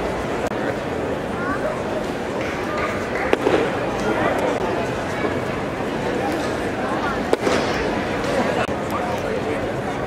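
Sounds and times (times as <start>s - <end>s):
crowd chatter: 0.0s - 10.0s
bat cracking on baseball: 2.4s - 4.5s, 7.2s - 8.5s.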